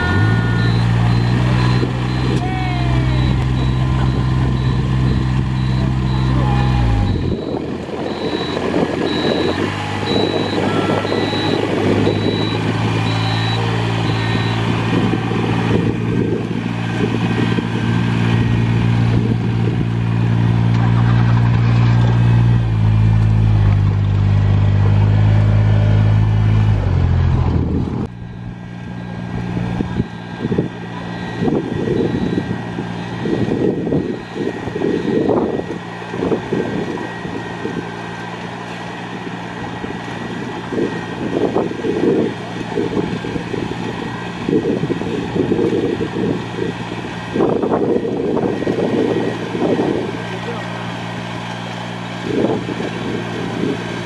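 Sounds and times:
short high beeps: 0.0 - 2.4, 3.0 - 14.7, 30.0 - 35.3
rice transplanter engine running: 0.0 - 54.0
wind noise on microphone: 6.9 - 13.4, 14.0 - 20.0, 29.3 - 37.9, 39.7 - 50.1, 52.2 - 54.0.

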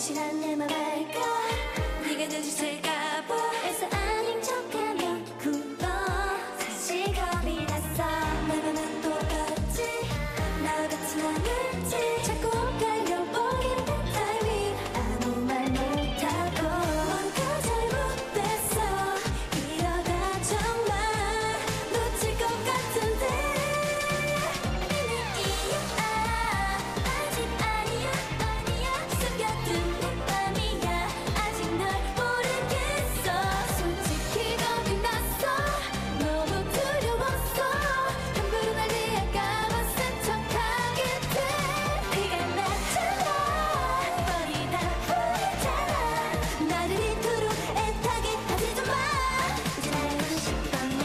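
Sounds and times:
dance-pop beat: 0.0 - 51.0
female voices singing pop: 0.0 - 51.0.

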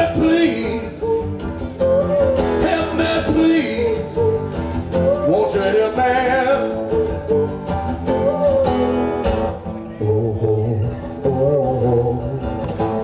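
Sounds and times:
person singing: 0.0 - 7.2, 8.1 - 13.0
live rock band playing: 0.0 - 11.7
electric guitar: 0.0 - 13.0.

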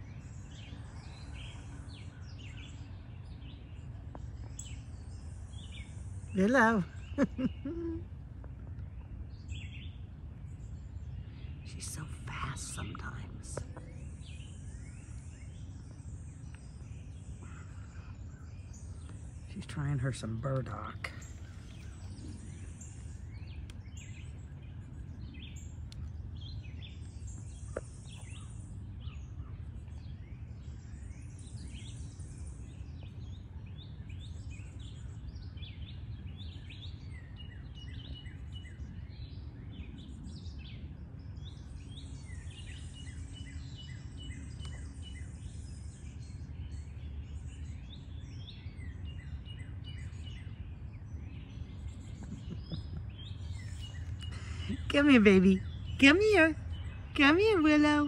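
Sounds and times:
low background rumble: 0.0 - 58.0
songbirds chirping and singing: 0.0 - 58.0.

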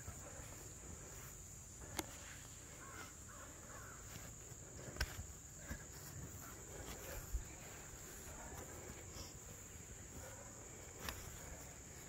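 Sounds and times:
insect drone: 0.0 - 12.0
bird calling: 2.7 - 4.3.

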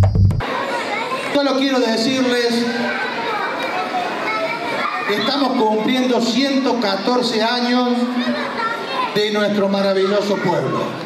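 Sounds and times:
crowd chatter: 0.4 - 11.0.

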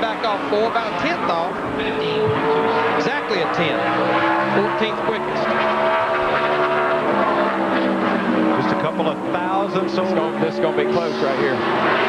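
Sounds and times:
race car engine high revs: 0.0 - 12.0.

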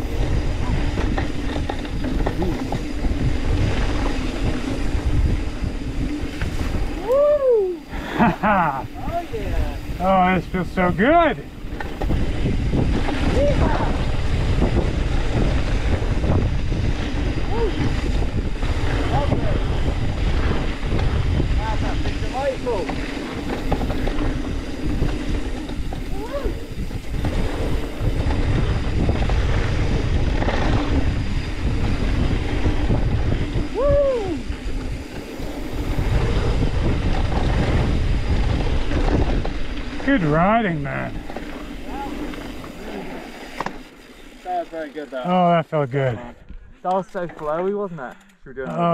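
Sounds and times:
wind buffeting microphone: 0.0 - 44.6
bike tyres rumbling on dirt: 0.0 - 47.9.

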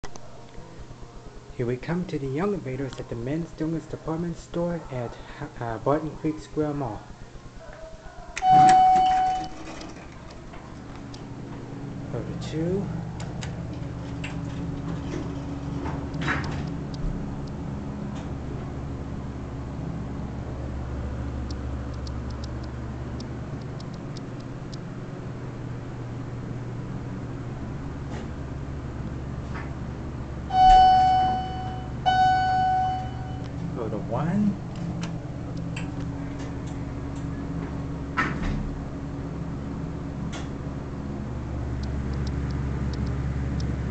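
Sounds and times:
low steady hum: 0.0 - 43.9
elevator chime ding: 8.4 - 9.8, 30.5 - 33.6.

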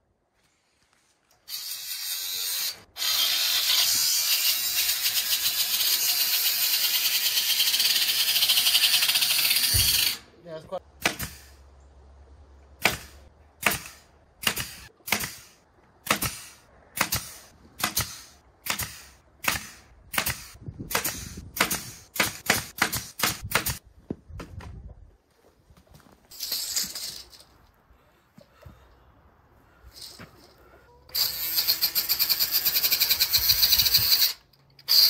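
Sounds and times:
pneumatic fastener gun firing: 7.5 - 10.2, 12.8 - 15.5, 16.1 - 23.8.

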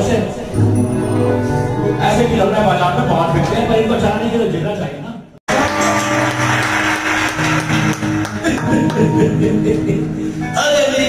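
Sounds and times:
live band playing held chords: 5.5 - 11.0.

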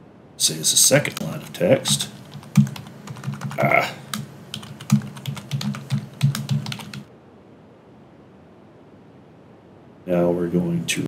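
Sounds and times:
typing on computer keyboard: 1.4 - 7.1.

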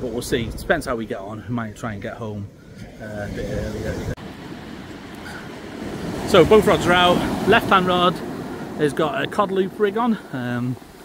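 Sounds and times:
wind rumbling on microphone: 0.0 - 9.8
surf breaking on shore: 1.9 - 11.0.

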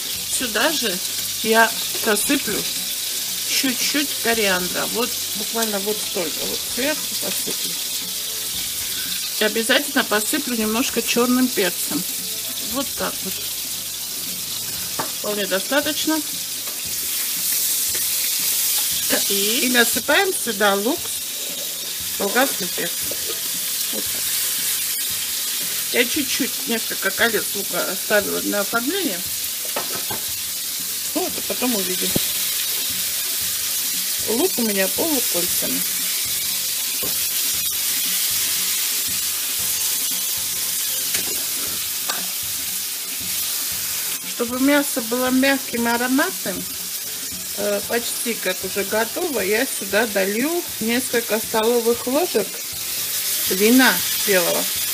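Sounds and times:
meat sizzling in a frying pan: 0.0 - 54.9.

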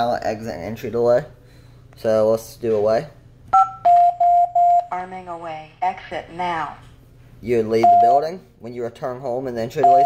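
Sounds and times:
alarm panel beeps: 3.5 - 4.9, 7.8 - 8.2, 9.8 - 10.0.

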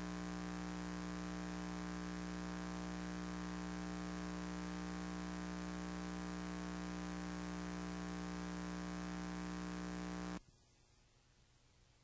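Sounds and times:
electrical hum with hiss: 0.0 - 10.4.

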